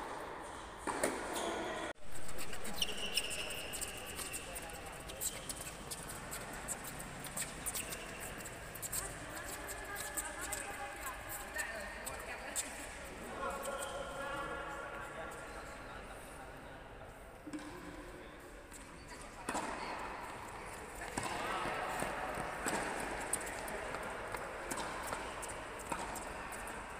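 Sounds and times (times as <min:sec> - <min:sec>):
background voices and movement: 0:00.0 - 0:26.9
shoes squeaking on hard court: 0:00.4 - 0:12.8.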